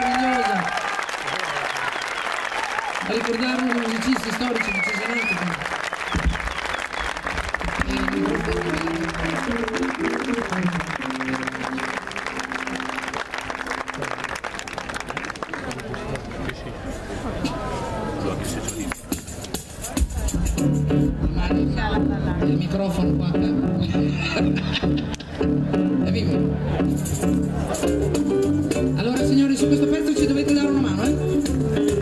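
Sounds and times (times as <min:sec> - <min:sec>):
audience applause: 0:00.0 - 0:16.8
band playing: 0:03.1 - 0:15.5, 0:18.4 - 0:32.0
keyboard notes: 0:07.4 - 0:15.2, 0:19.9 - 0:32.0
heavy bass line: 0:20.2 - 0:32.0.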